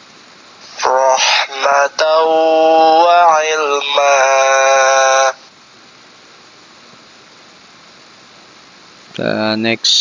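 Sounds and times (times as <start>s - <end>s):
faint hiss: 0.0s - 10.0s
man reciting: 0.7s - 5.4s.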